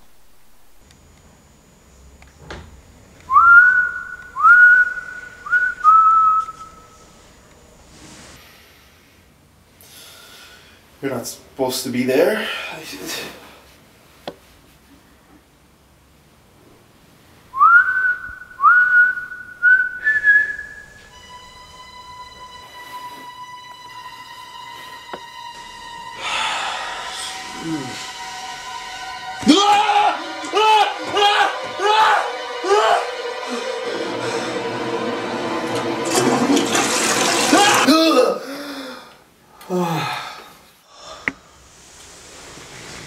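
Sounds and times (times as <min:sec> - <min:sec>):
person whistling: 0:03.3 - 0:07.1, 0:17.6 - 0:21.5, 0:26.2 - 0:29.0
steady tone with overtones: 0:20.8 - 0:36.1
toilet flushing: 0:34.1 - 0:37.9.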